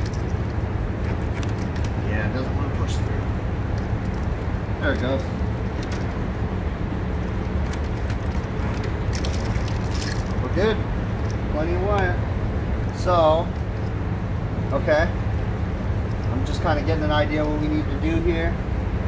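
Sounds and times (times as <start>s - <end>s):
low background rumble: 0.0s - 19.0s.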